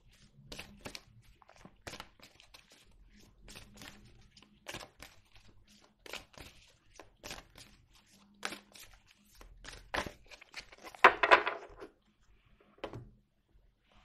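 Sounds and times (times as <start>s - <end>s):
cards being shuffled: 0.6s - 2.8s
cards set down on table: 11.0s - 11.9s.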